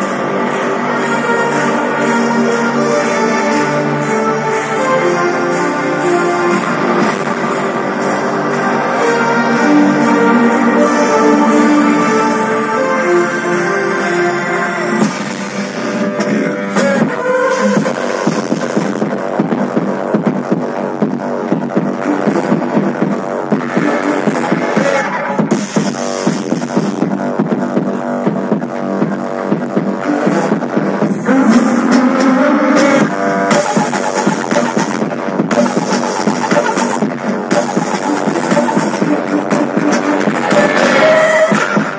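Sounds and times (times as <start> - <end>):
electronic pop music with drum beat: 0.0 - 41.9.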